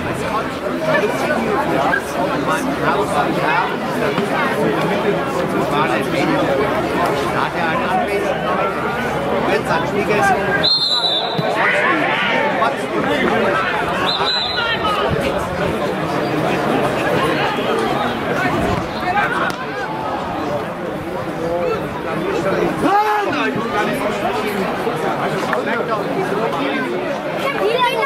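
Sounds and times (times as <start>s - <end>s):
people chattering: 0.0s - 28.0s.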